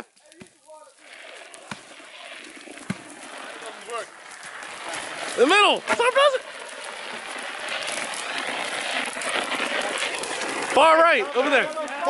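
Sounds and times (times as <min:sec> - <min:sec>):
burning grass hissing and crackling: 0:00.0 - 0:12.0.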